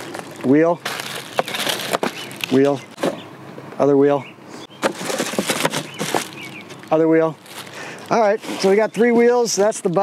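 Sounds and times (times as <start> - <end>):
plastic wrapping crinkling: 0.0 - 2.7, 5.0 - 6.4, 7.4 - 8.0.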